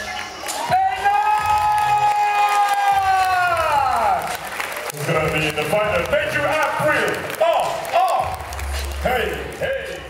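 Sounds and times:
crowd cheering: 0:00.0 - 0:10.0
man shouting through microphone: 0:00.7 - 0:04.2.

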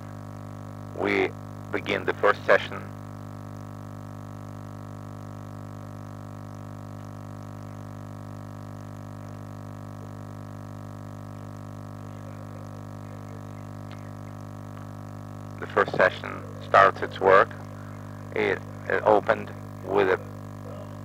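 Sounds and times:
electrical mains hum: 0:00.0 - 0:21.0.

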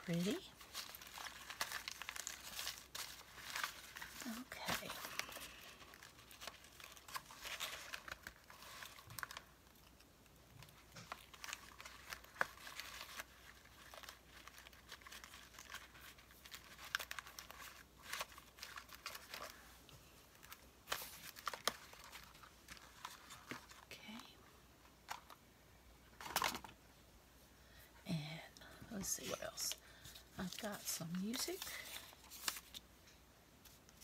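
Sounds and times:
paper crinkling and rustling: 0:00.0 - 0:24.2, 0:29.2 - 0:32.9.

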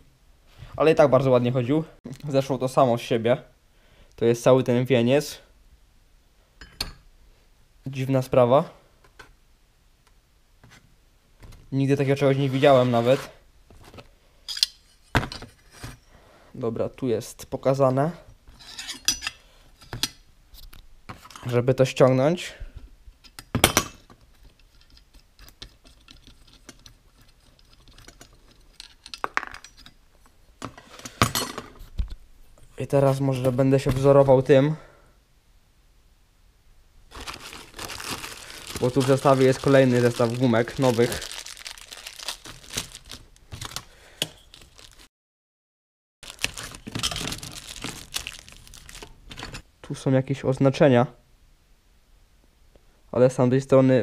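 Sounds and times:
metal parts clinking: 0:25.9 - 0:30.0
plastic bag crinkling: 0:37.1 - 0:45.1, 0:46.2 - 0:49.5.

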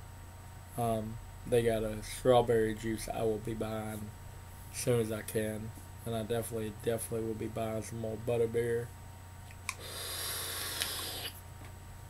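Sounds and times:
vape draw hiss: 0:09.7 - 0:11.4.

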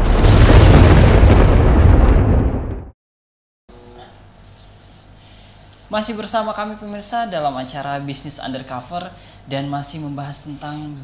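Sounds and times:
boom and low rumble: 0:00.0 - 0:03.0.

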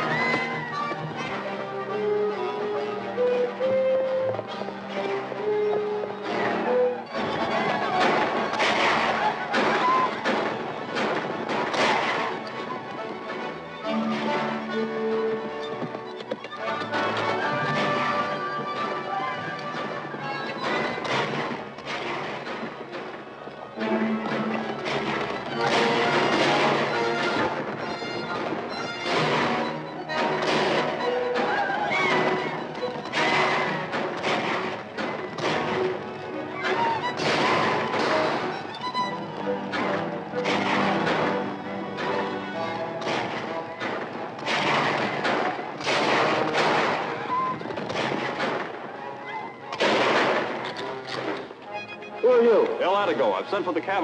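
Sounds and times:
dramatic orchestral music: 0:00.0 - 0:54.0
sharp gunshots: 0:06.3 - 0:14.5, 0:16.9 - 0:49.0, 0:49.7 - 0:51.5.

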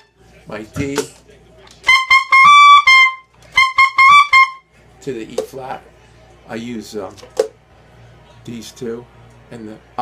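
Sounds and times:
tenor saxophone high notes: 0:01.9 - 0:04.6.

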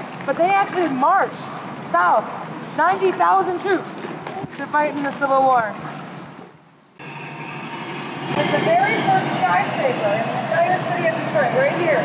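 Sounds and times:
traffic hiss and rumble: 0:07.9 - 0:12.0
people's voices: 0:08.4 - 0:12.0.

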